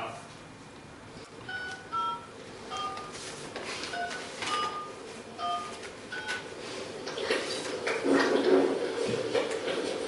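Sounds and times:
telephone keypad dialing beeps: 1.5s - 3.1s, 3.9s - 6.4s.

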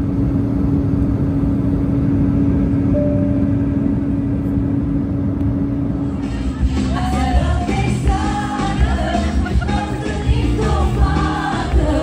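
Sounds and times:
airliner cabin roar: 0.0s - 12.0s
constant low hum: 0.0s - 12.0s
music: 6.0s - 12.0s.

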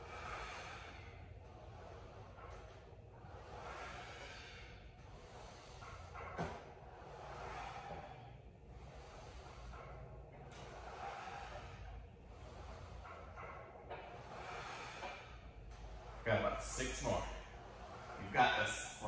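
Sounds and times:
man breathing with exertion: 0.0s - 16.2s, 17.0s - 18.2s.

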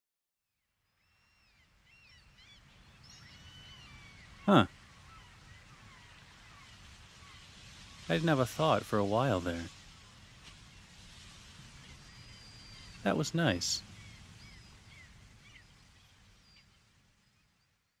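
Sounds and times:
low hiss: 0.8s - 18.0s.

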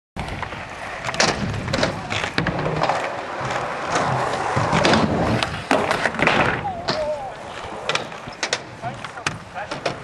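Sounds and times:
scooter deck knocks and clacks: 0.2s - 7.1s, 7.7s - 10.0s
scooter wheels rolling on concrete: 0.2s - 10.0s.

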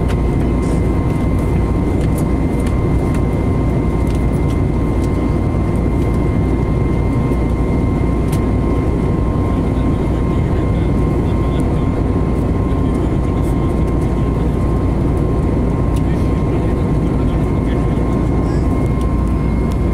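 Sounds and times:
jet engines and airflow roar: 0.0s - 19.9s
thin steady whine: 0.0s - 19.9s.

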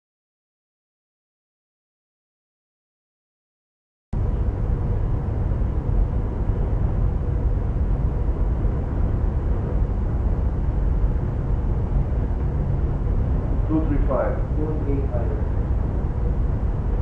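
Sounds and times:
faint steady hum: 4.2s - 17.0s
ship engines rumbling: 4.2s - 17.0s.

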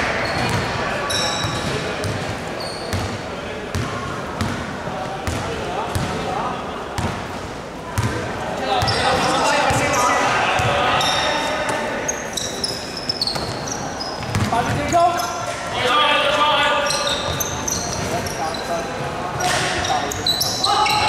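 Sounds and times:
players' voices: 0.0s - 21.0s
sneaker squeaks: 0.2s - 4.6s, 8.8s - 15.6s, 16.8s - 21.0s.

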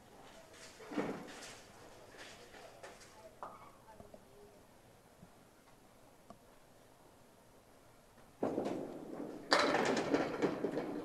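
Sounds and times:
bowling ball rolling on lane: 8.4s - 11.0s
wooden pins clattering: 8.4s - 11.0s.

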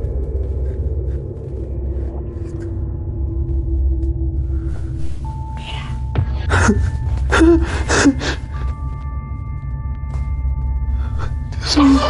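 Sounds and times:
low droning music: 0.0s - 12.0s.

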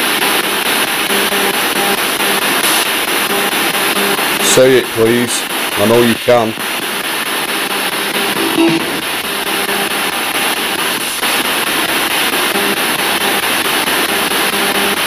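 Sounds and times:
radio static hiss: 0.0s - 15.0s
snatches of broadcast sound and music: 0.0s - 15.0s.

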